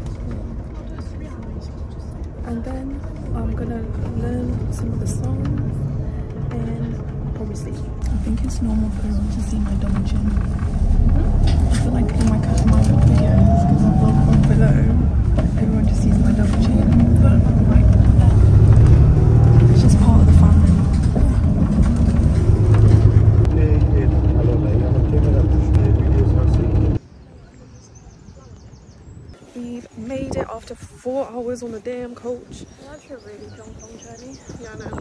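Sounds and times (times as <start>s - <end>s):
faint voices: 0.0s - 35.0s
road and engine rumble: 0.0s - 35.0s.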